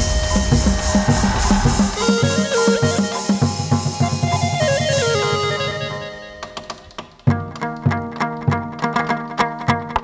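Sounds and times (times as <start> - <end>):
plucked lute: 4.4 - 10.0.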